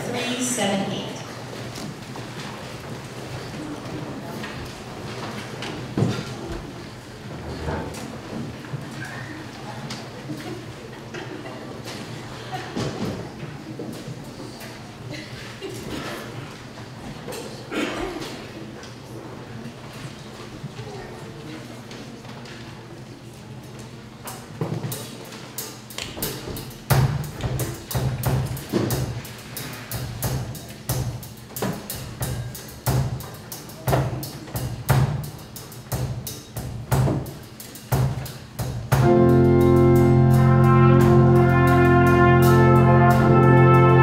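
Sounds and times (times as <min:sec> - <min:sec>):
congregation rustling and murmuring: 0:00.0 - 0:44.0.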